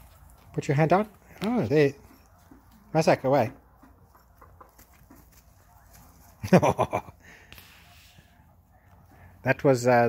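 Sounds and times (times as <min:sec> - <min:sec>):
faint outdoor background: 0:00.0 - 0:10.0
person laughing: 0:06.4 - 0:07.4.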